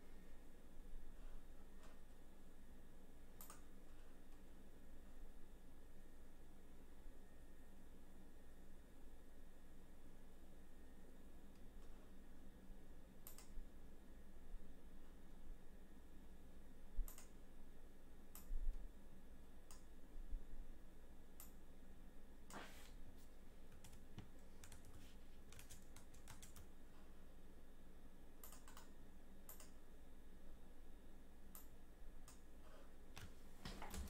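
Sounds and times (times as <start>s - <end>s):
computer keyboard and mouse clicking: 3.4s - 3.7s, 13.2s - 13.6s, 17.0s - 17.4s, 23.7s - 26.7s, 28.4s - 28.9s, 29.5s - 29.8s, 33.2s - 34.0s.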